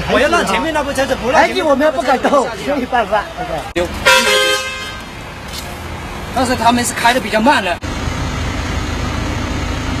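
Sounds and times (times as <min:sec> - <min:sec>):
vehicle engines idling: 0:00.0 - 0:10.0.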